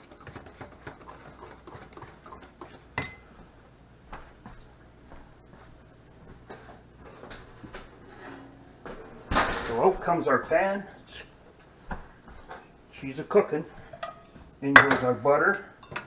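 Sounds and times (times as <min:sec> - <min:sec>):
whisk scraping metal bowl: 0:00.0 - 0:02.8
steady low hum: 0:00.9 - 0:16.0.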